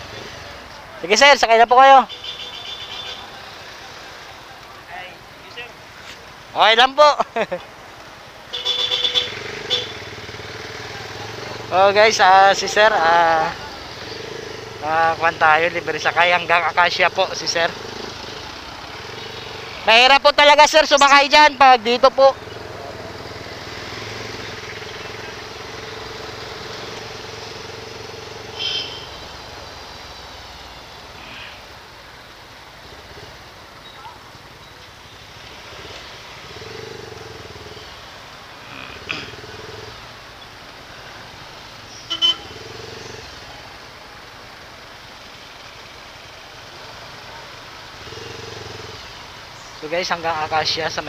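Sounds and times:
motorcycle engine running: 0:08.6 - 0:19.9, 0:21.9 - 0:30.2, 0:35.0 - 0:40.2, 0:46.7 - 0:49.8
short horn toots: 0:28.4 - 0:29.2, 0:42.0 - 0:42.6.

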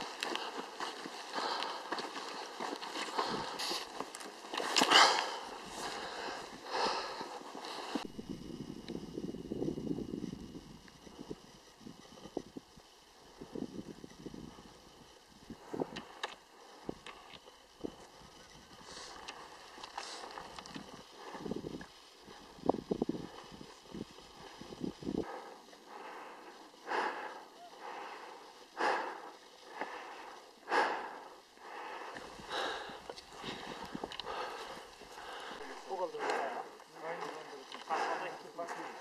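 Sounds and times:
footsteps on rocks and stones: 0:00.0 - 0:06.3
heavy breathing: 0:00.0 - 0:08.8, 0:14.5 - 0:39.0.

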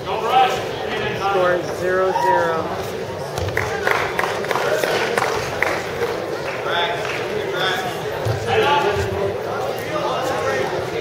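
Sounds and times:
spectators talking and calling: 0:00.0 - 0:11.0.

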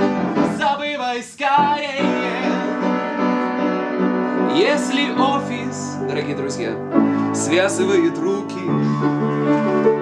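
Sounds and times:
man singing: 0:00.0 - 0:03.2, 0:04.4 - 0:06.5
upright piano chords: 0:00.0 - 0:10.0.

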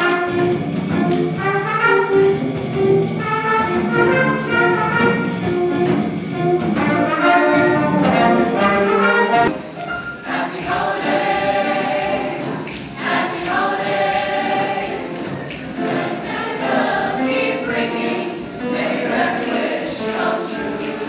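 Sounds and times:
choir singing in harmony: 0:03.1 - 0:21.0.

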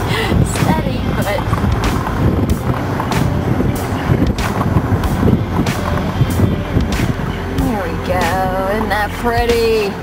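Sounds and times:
vehicle road and engine rumble: 0:00.0 - 0:10.0
wind buffeting microphone: 0:00.0 - 0:10.0.

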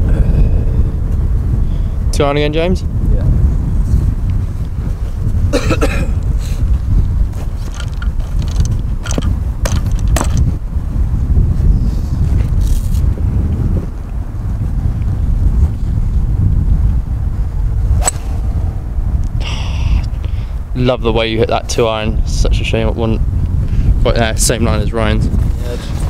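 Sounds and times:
wind buffeting microphone: 0:00.0 - 0:26.0
golf club striking ball: 0:18.0 - 0:18.8.

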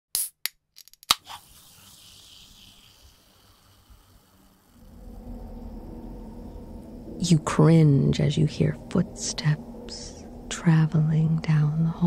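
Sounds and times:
hiss: 0:01.2 - 0:05.4
low drone: 0:02.9 - 0:12.0.

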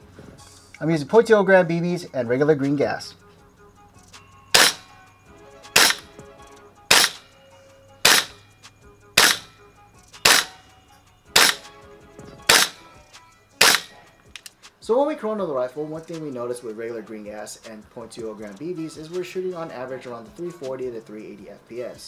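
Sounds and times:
airsoft rifle shots cracking: 0:04.5 - 0:04.9, 0:05.8 - 0:06.1, 0:06.9 - 0:07.2, 0:08.0 - 0:08.4, 0:09.2 - 0:09.5, 0:10.2 - 0:10.6, 0:11.4 - 0:11.7, 0:12.5 - 0:12.8, 0:13.6 - 0:14.0.

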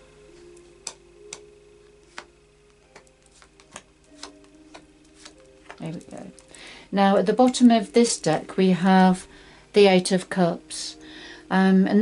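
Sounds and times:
cards clicking as laid down: 0:02.0 - 0:06.6.

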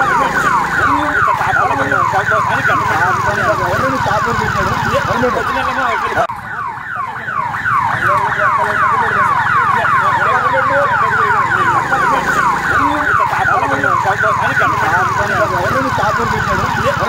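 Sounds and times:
electronic siren sweeping: 0:00.0 - 0:17.0.

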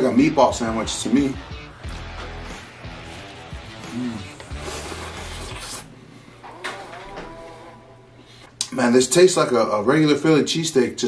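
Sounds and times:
sandwich crunching bite: 0:02.8 - 0:05.9.

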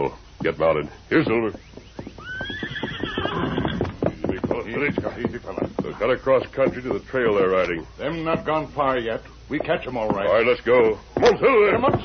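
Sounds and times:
hoof clops: 0:00.0 - 0:12.0
horse whinnying: 0:02.0 - 0:04.2.

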